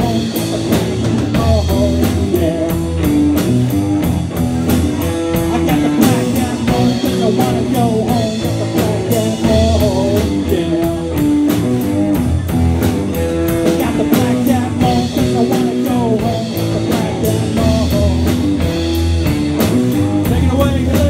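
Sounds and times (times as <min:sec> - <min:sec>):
bass: 0:00.0 - 0:21.0
drum kit beat: 0:00.0 - 0:21.0
electric guitars with bending notes: 0:00.0 - 0:21.0.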